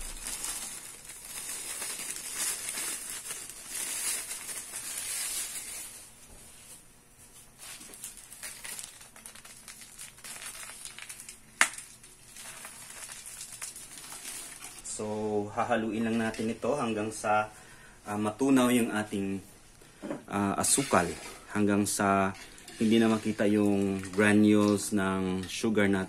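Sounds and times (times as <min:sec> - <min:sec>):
plastic bag crinkling: 0:00.0 - 0:06.2, 0:07.5 - 0:15.0, 0:20.6 - 0:25.5
sugar pouring into water: 0:20.6 - 0:25.0.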